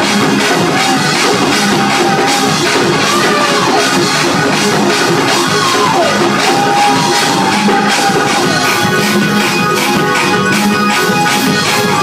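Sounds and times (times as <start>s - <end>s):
fast steady drumming: 0.0s - 12.0s.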